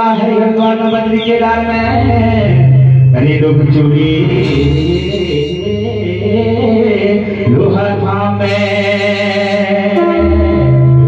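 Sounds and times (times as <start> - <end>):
low keyboard drone: 0.0 - 11.0
person singing a long note: 0.0 - 11.0.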